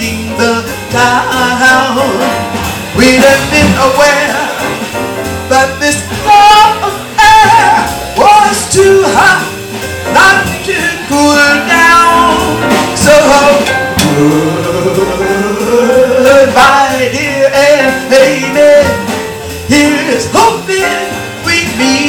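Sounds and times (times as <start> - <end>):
small band playing: 0.0 - 22.0
woman singing jazz: 0.0 - 22.0.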